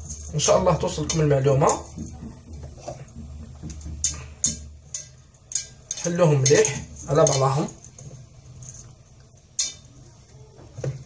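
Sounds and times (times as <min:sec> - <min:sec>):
hands rustling pastry strands: 0:00.0 - 0:02.9
pastry crackling: 0:00.0 - 0:11.0.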